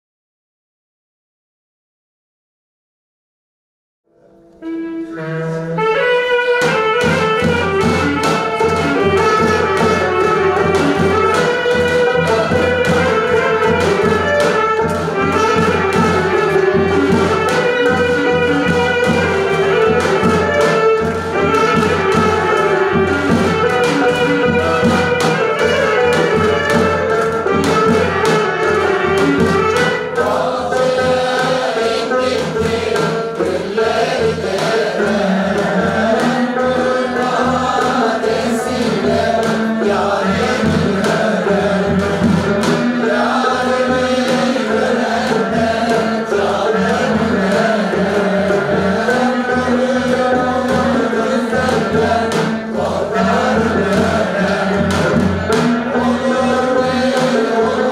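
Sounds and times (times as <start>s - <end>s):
instrumental accompaniment with beat: 4.4s - 57.9s
women's choir singing: 6.6s - 57.9s.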